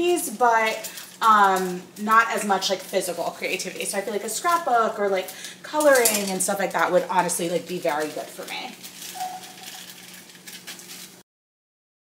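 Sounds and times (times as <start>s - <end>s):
plastic bag crinkling: 0.0s - 11.2s.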